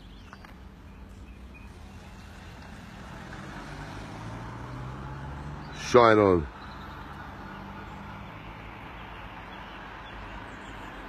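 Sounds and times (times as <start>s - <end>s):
vehicle engine hum: 0.0s - 11.0s
tyres hissing on wet road: 1.7s - 11.0s.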